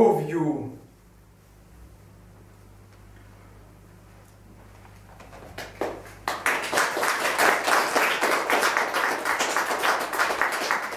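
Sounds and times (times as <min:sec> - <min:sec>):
audience applauding: 0:05.4 - 0:10.9.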